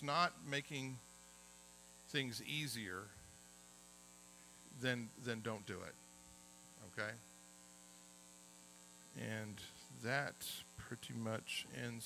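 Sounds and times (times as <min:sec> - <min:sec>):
electrical mains hum: 0:00.0 - 0:12.0
person speaking: 0:02.1 - 0:03.2, 0:04.7 - 0:06.0, 0:09.1 - 0:12.0.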